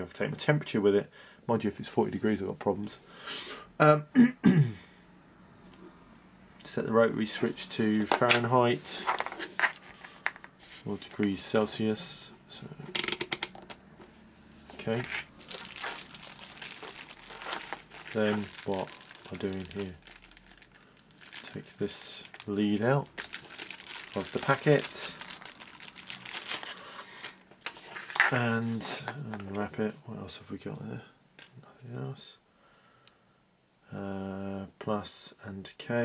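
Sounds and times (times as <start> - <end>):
plastic bag crinkling: 14.8 - 29.4.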